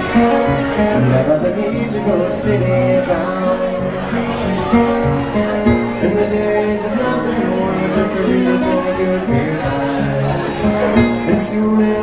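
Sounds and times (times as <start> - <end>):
acoustic guitar: 0.0 - 12.0.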